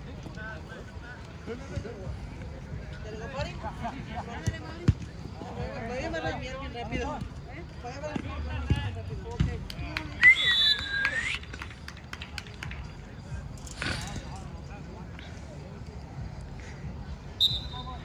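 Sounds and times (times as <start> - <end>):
loud whistle: 10.2 - 11.4, 17.4 - 18.0.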